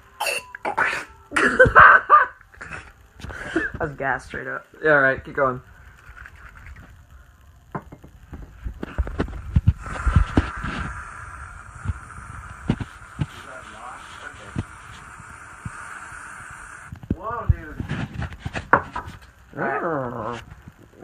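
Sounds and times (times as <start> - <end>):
whipped-cream can spraying hiss: 9.1 - 17.0.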